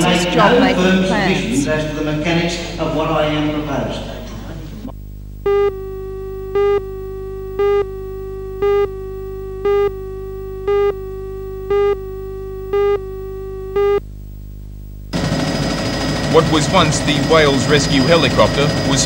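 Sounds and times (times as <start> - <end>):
steady low hum: 0.0 - 19.0
short loud electronic beeps: 5.5 - 14.0
noisy helicopter: 15.1 - 19.0.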